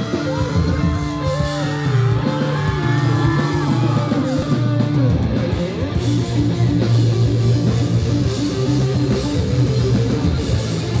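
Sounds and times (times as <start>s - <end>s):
drums: 0.0s - 11.0s
electric guitars playing a riff: 0.0s - 11.0s.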